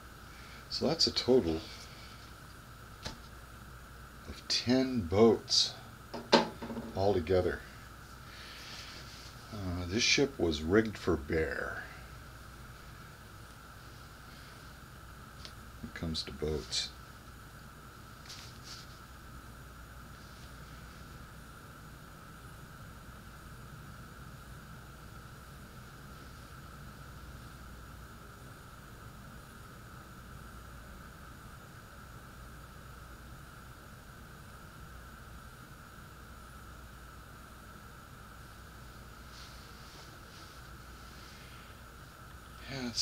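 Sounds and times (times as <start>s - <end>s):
faint high whine: 0.0s - 43.0s
steady background hiss: 0.0s - 43.0s.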